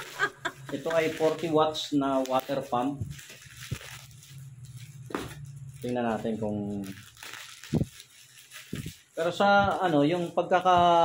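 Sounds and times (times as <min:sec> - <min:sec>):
bubble wrap crinkling: 0:00.0 - 0:11.0
soft low thumps: 0:02.9 - 0:05.6, 0:08.7 - 0:10.0, 0:10.6 - 0:11.0.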